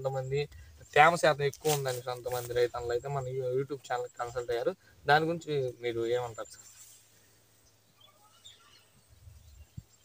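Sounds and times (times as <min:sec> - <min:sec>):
short bird chirps: 0:06.4 - 0:10.0.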